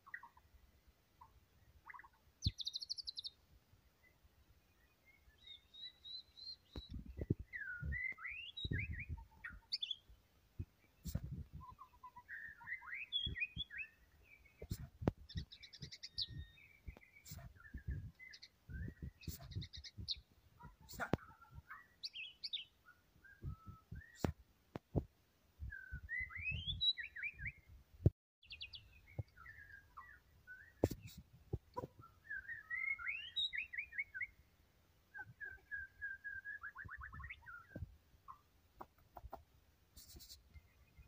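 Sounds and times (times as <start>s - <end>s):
bird singing whistles: 5.4s - 10.0s, 11.6s - 14.0s, 14.7s - 20.2s, 22.2s - 24.3s, 25.7s - 27.6s, 32.0s - 34.4s, 35.2s - 37.8s.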